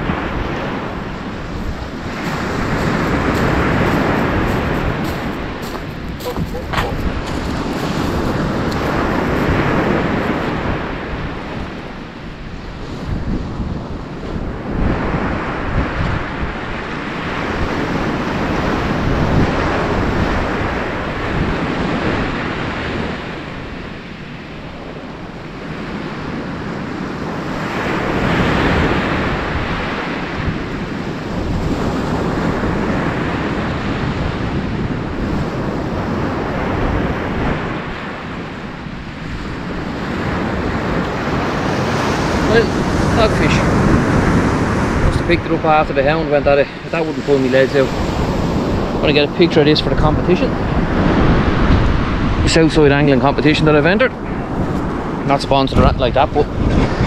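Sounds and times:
surf breaking on shingle beach: 0.0 - 11.7, 39.4 - 52.3
wind buffeting microphone: 0.0 - 57.0.

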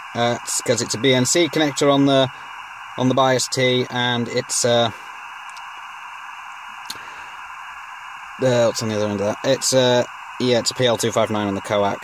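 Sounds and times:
radio receiver hiss: 0.0 - 12.0.

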